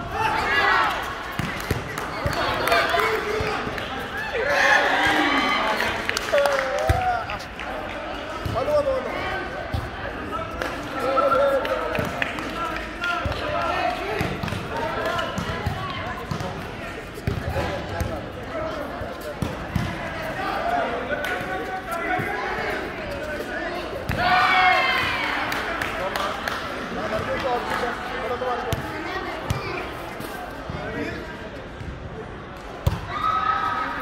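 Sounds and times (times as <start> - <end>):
loud shout: 4.2 - 7.2, 24.2 - 25.5, 33.0 - 34.0.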